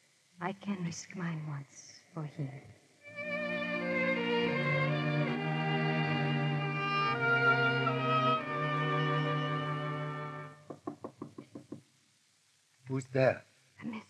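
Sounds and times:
orchestral strings holding chords: 3.0 - 10.6
knocking on door: 10.6 - 11.9.

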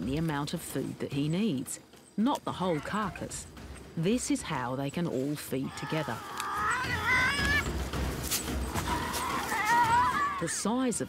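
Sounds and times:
tasmanian devils crying: 2.6 - 3.4, 5.6 - 7.8, 8.7 - 10.7.

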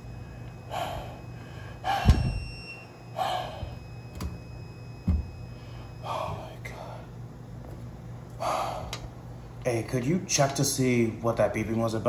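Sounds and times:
steady low hum: 0.0 - 12.0
person exhaling breathily: 0.7 - 2.3, 8.4 - 9.0.

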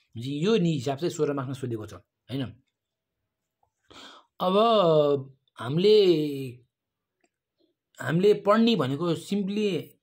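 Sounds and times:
person speaking: 0.0 - 3.1, 4.3 - 10.0.

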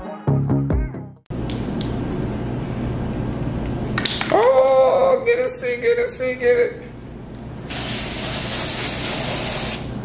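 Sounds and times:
spray paint can hissing: 7.7 - 9.9.

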